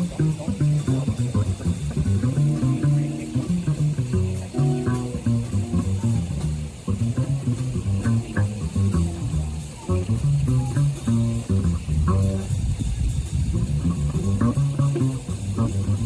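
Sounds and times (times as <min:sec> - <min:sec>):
plucked double bass in jazz: 0:00.0 - 0:16.0.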